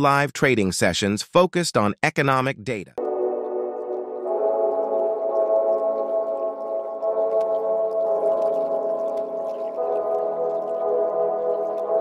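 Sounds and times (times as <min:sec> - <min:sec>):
ambient synthesizer chords: 0:03.0 - 0:12.0.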